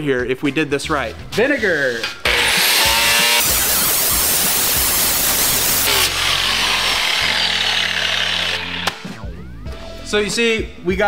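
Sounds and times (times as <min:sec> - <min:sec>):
angle grinder sanding steel: 0:02.2 - 0:08.9.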